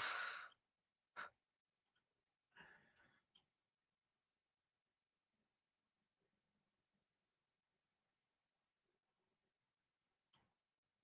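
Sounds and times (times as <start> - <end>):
faint breath: 0.0 - 0.6, 2.5 - 3.3.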